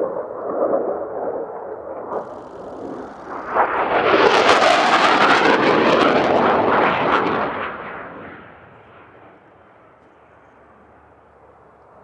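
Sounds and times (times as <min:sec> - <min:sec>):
jet roaring with rough crackle: 0:00.0 - 0:12.0.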